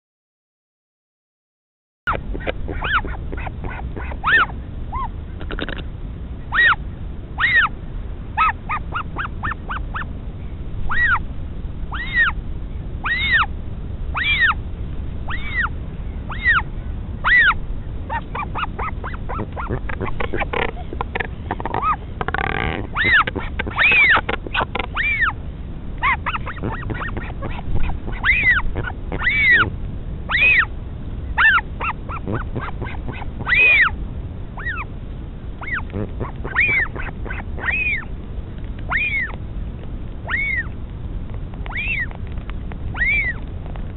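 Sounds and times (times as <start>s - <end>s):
albatross chick begging cries: 2.1s - 5.9s, 6.5s - 6.8s, 7.4s - 7.8s, 8.4s - 10.1s, 10.8s - 11.3s, 11.9s - 12.4s, 13.0s - 14.6s, 15.3s - 25.4s, 26.0s - 30.7s, 31.3s - 34.0s, 34.6s - 34.9s, 35.6s - 38.1s, 38.8s - 39.4s, 40.2s - 40.8s, 41.6s - 42.2s, 42.9s - 43.4s
harsh albatross call: 2.1s - 5.9s, 6.5s - 6.8s, 7.4s - 7.7s, 8.4s - 10.1s, 10.9s - 11.2s, 11.9s - 12.4s, 13.0s - 13.5s, 14.2s - 14.6s, 16.3s - 16.6s, 17.2s - 25.4s, 26.0s - 30.7s, 31.4s - 34.0s, 34.6s - 34.9s, 35.6s - 38.1s, 38.9s - 39.3s, 40.2s - 40.7s, 43.0s - 43.4s
low wind rumble: 2.1s - 43.9s.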